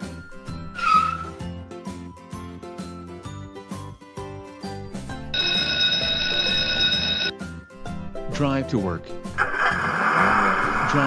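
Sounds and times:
light children's music: 0.0s - 9.8s
electric bell ringing: 5.3s - 7.4s.

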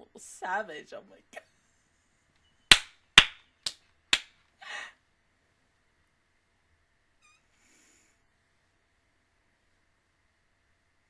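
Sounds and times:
faint high squeak: 7.2s - 7.8s
soft breath through the nose: 7.5s - 8.3s.

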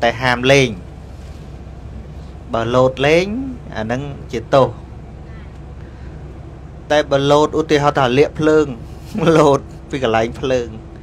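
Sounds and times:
vehicle interior road rumble: 0.0s - 11.0s.

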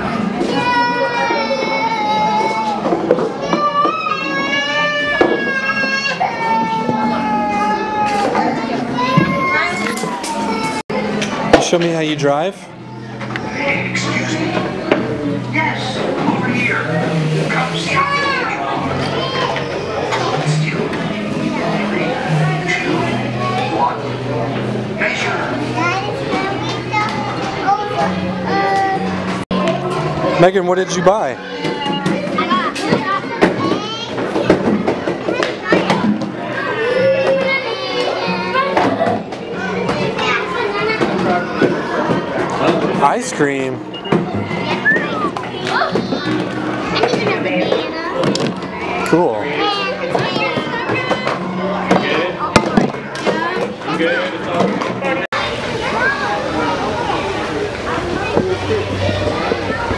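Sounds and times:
young children's voices: 17.7s - 20.8s, 25.0s - 42.8s, 43.4s - 54.4s, 55.4s - 59.9s.

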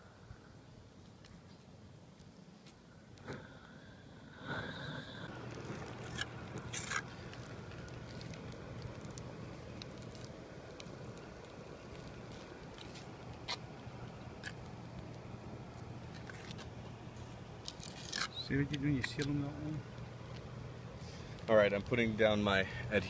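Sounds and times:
roofing torch burning: 0.0s - 23.0s.

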